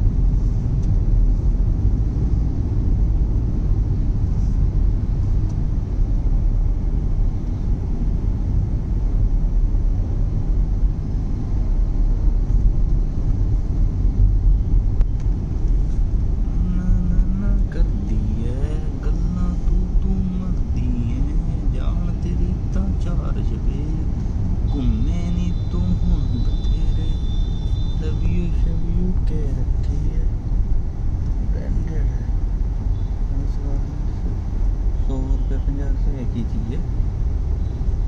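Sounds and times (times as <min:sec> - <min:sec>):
road traffic rumble: 0:00.0 - 0:38.0
person speaking: 0:16.5 - 0:27.2, 0:28.0 - 0:30.4, 0:35.0 - 0:36.9.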